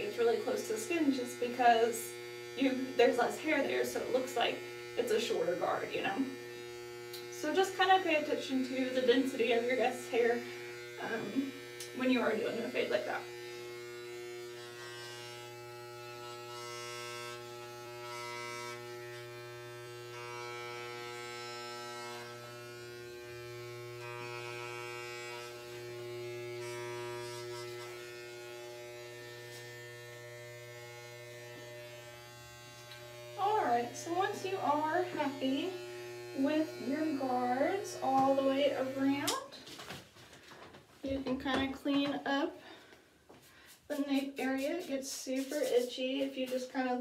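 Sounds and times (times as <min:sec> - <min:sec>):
electric hair clippers humming: 0:00.0 - 0:39.7.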